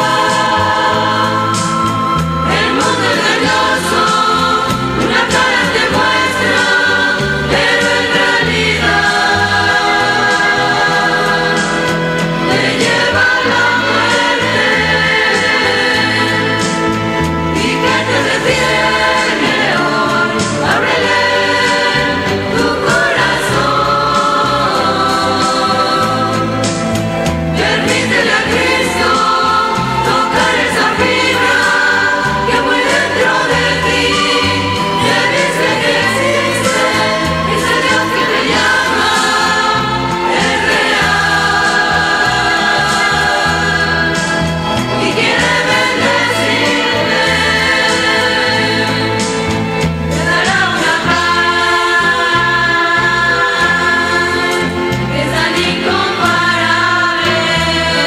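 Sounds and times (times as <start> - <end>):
bass line: 0.0 - 58.0
instrumental accompaniment: 0.0 - 58.0
vocal ensemble singing a hymn: 0.0 - 58.0.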